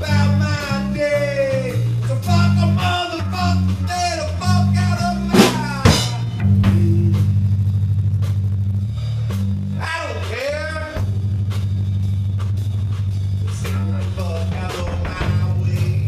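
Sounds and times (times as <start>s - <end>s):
punk band playing live: 0.0s - 16.0s
drum hits: 3.5s - 16.0s.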